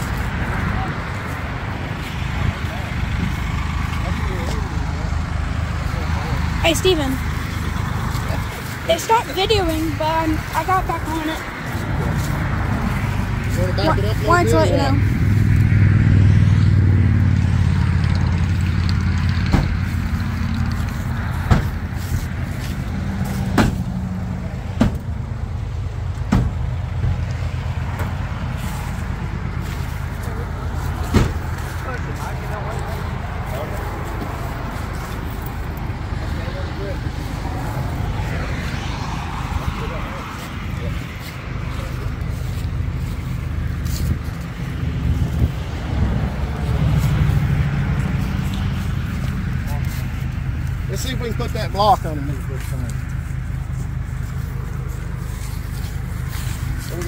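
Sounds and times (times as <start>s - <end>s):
engine running low: 0.0s - 57.0s
sharp knocks and clunks: 19.4s - 19.8s, 21.5s - 21.8s, 23.5s - 23.9s, 24.8s - 25.1s, 26.2s - 27.2s, 31.1s - 31.5s.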